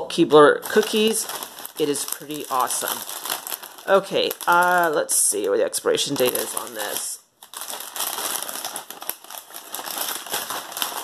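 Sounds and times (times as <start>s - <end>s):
plastic bag crinkling: 0.6s - 11.0s.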